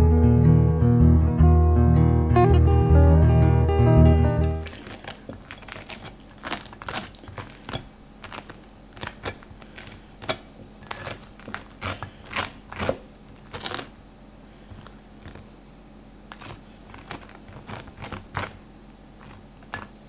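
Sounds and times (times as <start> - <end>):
knife sawing through toasted bagel: 4.6 - 14.0, 16.3 - 19.5.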